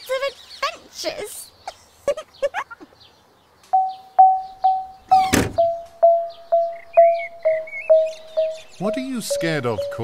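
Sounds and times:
cartoon child giggling: 1.9s - 2.9s
repeated plucked note music: 3.8s - 10.0s.

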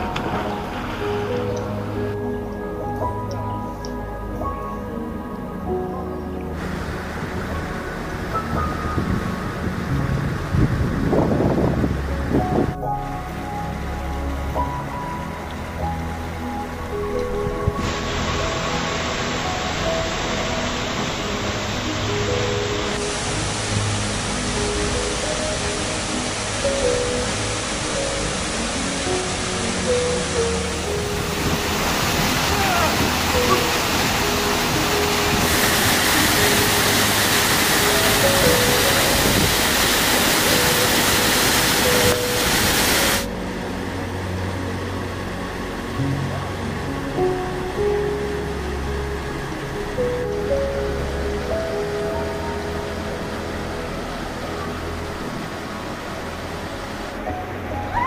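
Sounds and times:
background music: 0.0s - 58.0s
rushing stream and waterfall: 0.0s - 58.0s.

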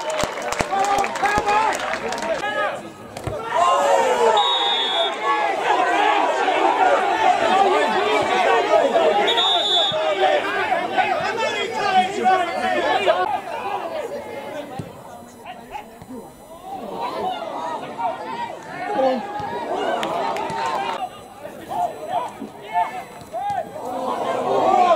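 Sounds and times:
spectators chattering and calling out: 0.0s - 24.9s.

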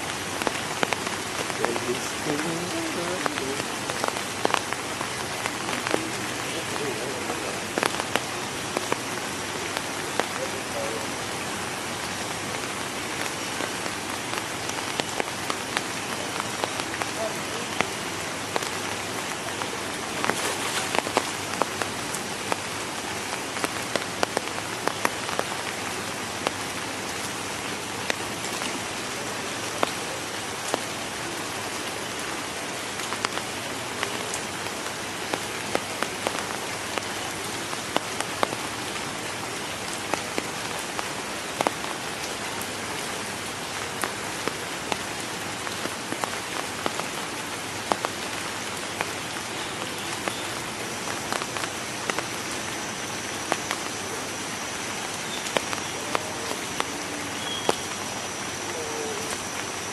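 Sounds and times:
rain pattering on water and leaves: 0.0s - 59.9s.

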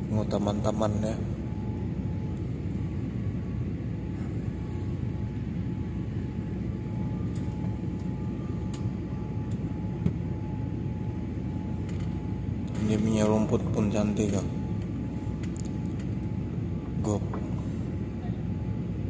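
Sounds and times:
faint steady whine: 0.0s - 19.0s
jet engine and airflow rumble: 0.0s - 19.0s.

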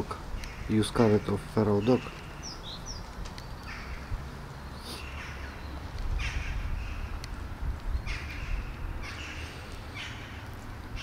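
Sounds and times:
crow cawing: 0.4s - 1.4s, 3.7s - 4.1s, 5.0s - 5.5s, 6.2s - 7.1s, 8.1s - 10.4s.

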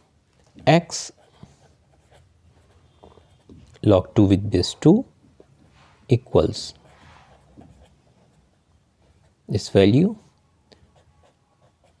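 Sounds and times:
pen scratching on paper: 1.1s - 3.7s, 6.7s - 9.6s, 10.9s - 12.0s.

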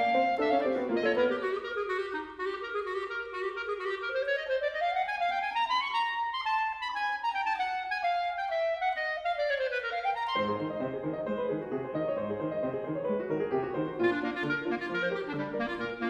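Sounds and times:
clarinet melody: 0.0s - 16.0s.

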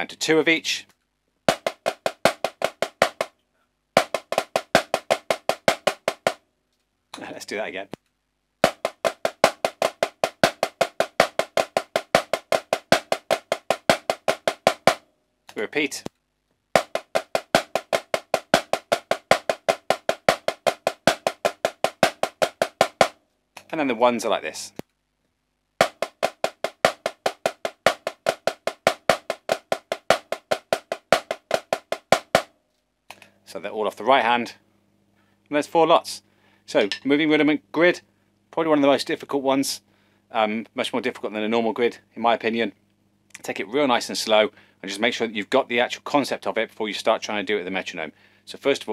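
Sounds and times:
snare drum strokes: 1.5s - 3.3s, 4.0s - 6.4s, 8.6s - 15.0s, 16.8s - 23.2s, 25.8s - 32.5s.

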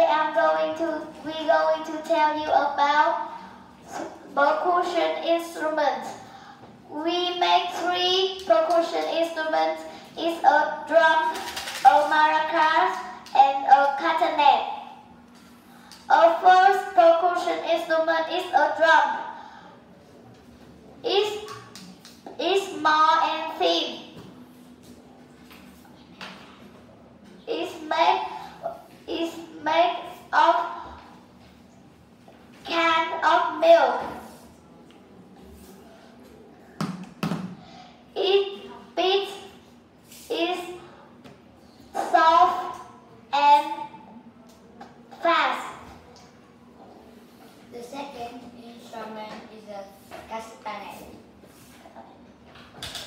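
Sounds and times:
child speaking: 0.0s - 6.3s, 6.9s - 15.1s, 16.1s - 19.6s, 21.0s - 24.2s, 27.4s - 31.2s, 32.6s - 34.5s, 38.1s - 39.7s, 40.3s - 41.0s, 41.9s - 44.0s, 45.1s - 46.1s, 47.6s - 52.2s.

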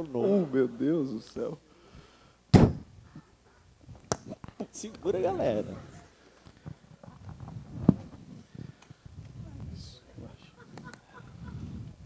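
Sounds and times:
sharp thump: 2.5s - 2.9s.

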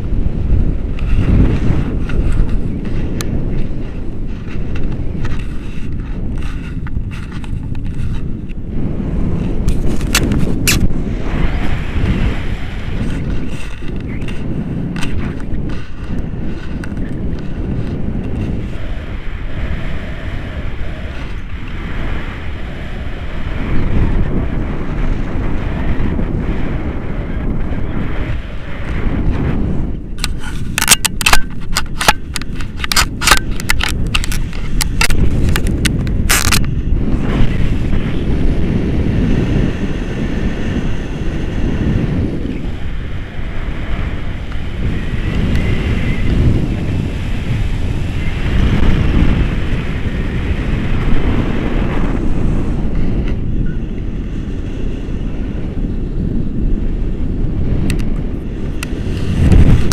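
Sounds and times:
wind buffeting microphone: 0.0s - 59.9s
sharp crackles: 30.1s - 38.0s.

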